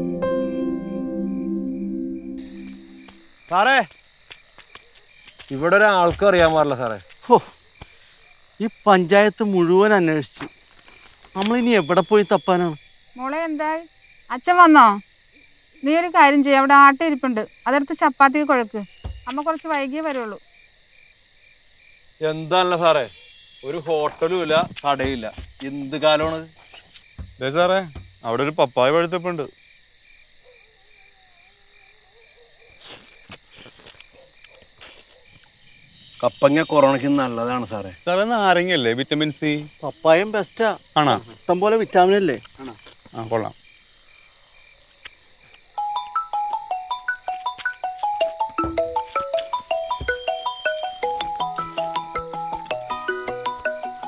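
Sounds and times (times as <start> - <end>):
soft background music: 0.0 - 3.1
crickets chirping: 0.0 - 54.0
voices talking: 11.3 - 15.0, 15.8 - 20.4, 22.2 - 29.5, 36.2 - 43.6.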